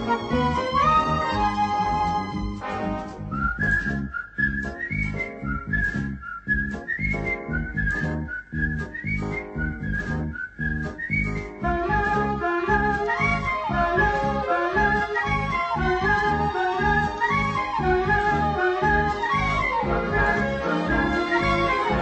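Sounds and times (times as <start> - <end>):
bouncy beat with bass: 0.0 - 22.0
whistled melody: 0.0 - 22.0.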